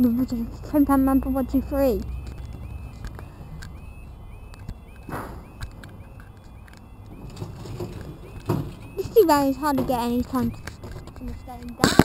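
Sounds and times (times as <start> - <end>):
level crossing warbling alarm: 0.0 - 12.0
low rumble of traffic: 0.0 - 12.0.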